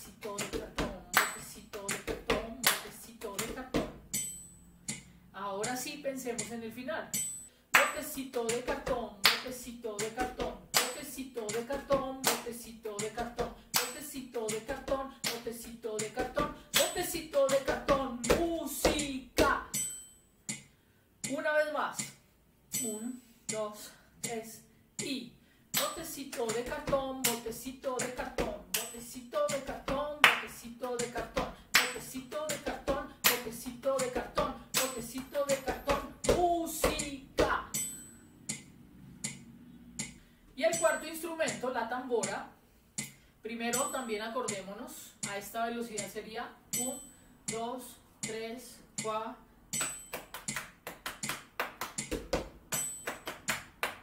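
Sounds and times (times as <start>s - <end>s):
woman chanting: 0.0s - 3.9s, 5.4s - 7.0s, 7.8s - 19.7s, 22.8s - 37.8s, 43.5s - 49.4s
hand claps and thigh slaps: 0.0s - 4.3s, 7.7s - 19.6s, 25.8s - 37.9s, 49.8s - 54.0s
hands slapping thighs: 49.8s - 54.0s.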